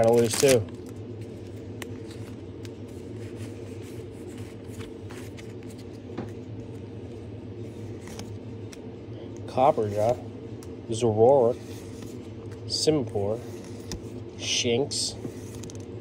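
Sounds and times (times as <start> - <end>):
cards being flipped through: 0.0 - 7.0, 7.6 - 8.9, 15.2 - 15.9
steady low hum: 0.0 - 16.0.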